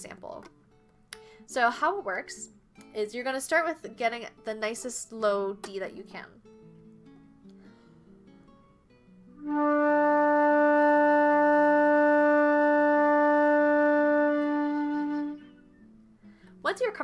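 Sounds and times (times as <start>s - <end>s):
soft plucked guitar music: 0.0s - 17.0s
flute playing a long low note: 9.4s - 15.6s.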